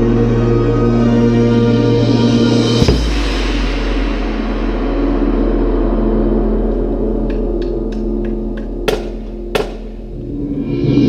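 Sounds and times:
sharp metallic strikes: 0:02.8 - 0:10.4.

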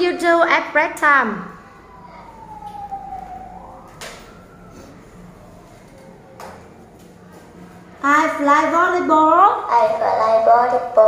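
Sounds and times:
siren-like wailing tone: 0:01.2 - 0:07.7.

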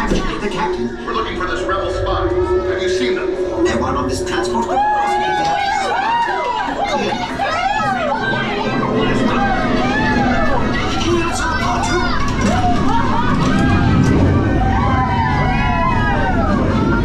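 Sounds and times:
voices talking: 0:00.0 - 0:14.5.

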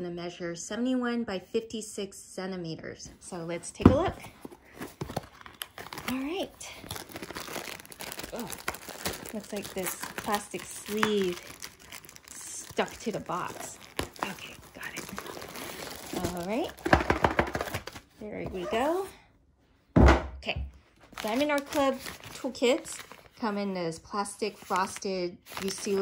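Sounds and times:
plastic sleeve crinkling: 0:04.3 - 0:19.1, 0:21.0 - 0:26.0.

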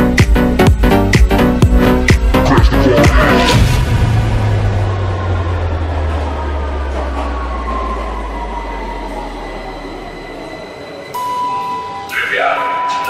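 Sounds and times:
deep bass drone: 0:00.0 - 0:08.6.

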